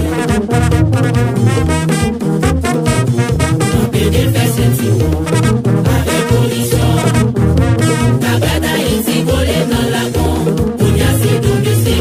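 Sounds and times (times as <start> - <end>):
horns playing a phrase: 0.0 - 8.4
drum and percussion beat: 0.0 - 12.0.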